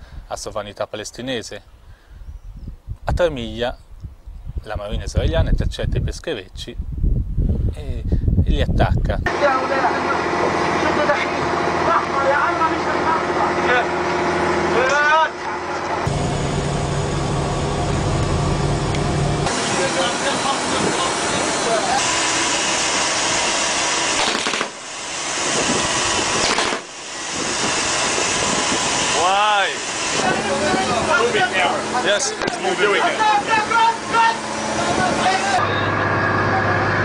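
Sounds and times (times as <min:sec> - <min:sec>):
wind and sea noise: 0:01.7 - 0:09.3, 0:25.1 - 0:35.5
men calling out: 0:09.3 - 0:14.0, 0:30.2 - 0:36.0
boat engine running: 0:09.3 - 0:37.0.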